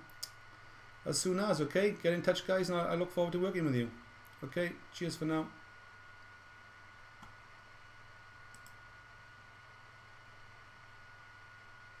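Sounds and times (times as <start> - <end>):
low electrical hum: 0.0 - 12.0
computer mouse clicks: 8.5 - 8.8.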